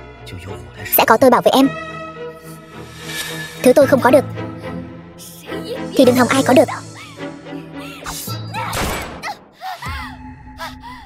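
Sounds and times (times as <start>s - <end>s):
background music: 0.0s - 11.0s
woman crying out and gasping: 7.8s - 11.0s.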